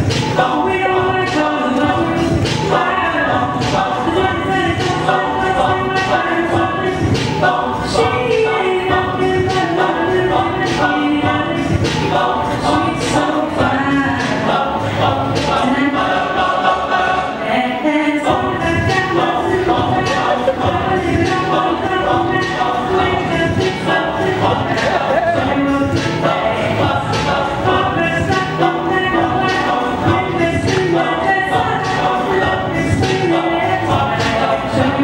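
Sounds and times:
steady beat: 0.0s - 17.0s, 18.3s - 35.0s
a cappella group singing: 0.0s - 35.0s
crisp beat: 18.3s - 35.0s.

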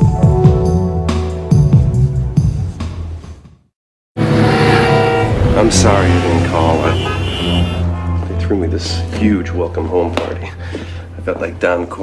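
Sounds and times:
music: 0.0s - 12.0s
car engine and traffic noise: 4.2s - 8.3s.

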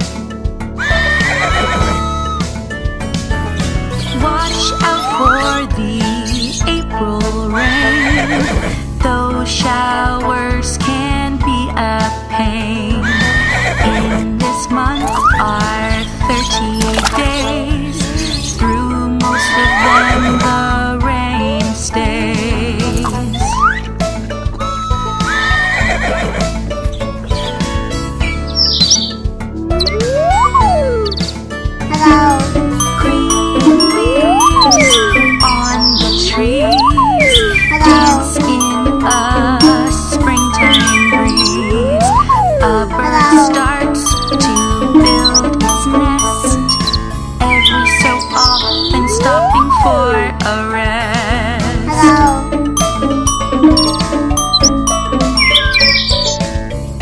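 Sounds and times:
background music: 0.0s - 57.0s
horse whinny: 0.8s - 2.1s, 25.2s - 26.5s.

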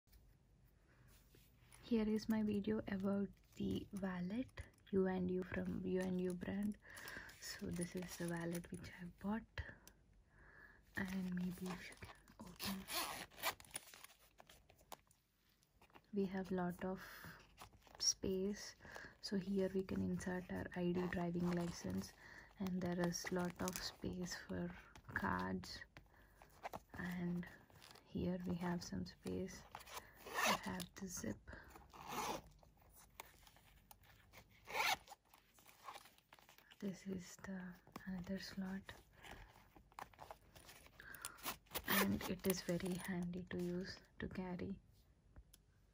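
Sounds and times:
wallet clicks and rustles: 2.1s - 9.1s, 11.0s - 16.5s, 17.3s - 43.8s
zipper rasping: 11.0s - 14.9s, 20.4s - 25.0s, 29.6s - 30.9s, 31.6s - 36.7s, 37.7s - 43.2s.

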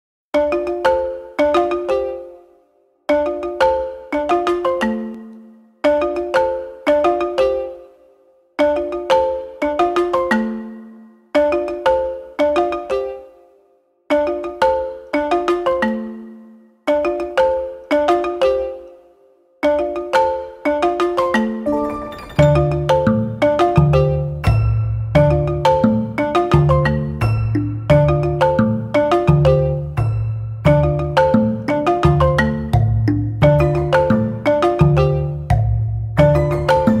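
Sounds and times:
bright struck notes phrase: 21.6s - 25.7s.

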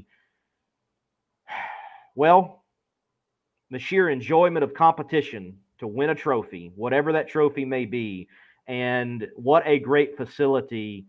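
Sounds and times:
man sighing: 1.4s - 2.2s
man talking: 2.2s - 2.6s, 3.7s - 11.0s.

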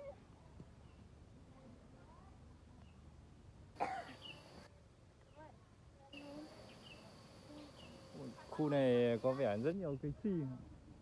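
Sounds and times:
faint outdoor background: 0.0s - 11.0s
person coughing: 3.8s - 4.2s.

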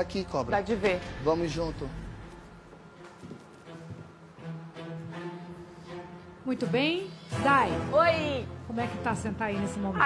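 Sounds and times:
tense low underscore music: 0.0s - 10.0s.

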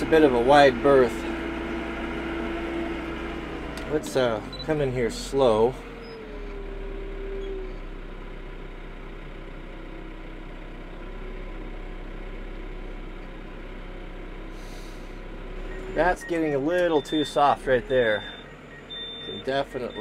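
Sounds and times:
tractor diesel engine droning: 0.0s - 20.0s.

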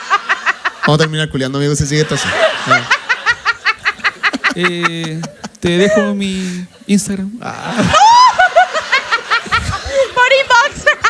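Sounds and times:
audience laughing: 0.0s - 6.2s, 7.6s - 11.0s
person laughing ha ha ha: 2.3s - 6.2s, 7.6s - 10.0s.

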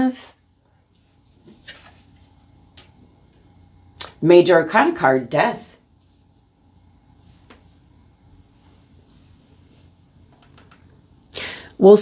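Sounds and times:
faint room hum: 0.0s - 12.0s.

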